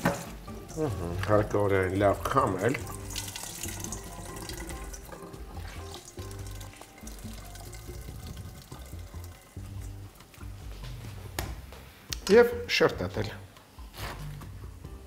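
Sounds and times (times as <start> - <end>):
water splashing and dripping: 0.0 - 11.0
light background music: 0.0 - 15.0
tap running into sink: 2.6 - 10.5.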